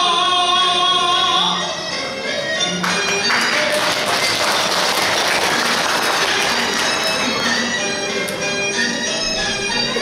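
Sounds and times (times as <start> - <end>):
audience applauding: 2.8 - 7.7.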